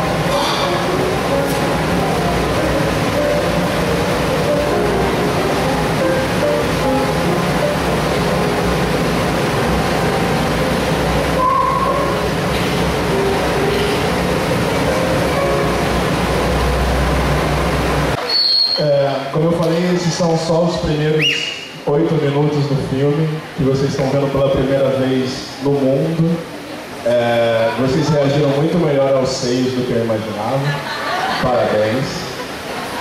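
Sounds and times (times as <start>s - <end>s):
loud rumbling soundtrack noise: 0.0s - 18.2s
short squealing tones: 18.2s - 18.9s.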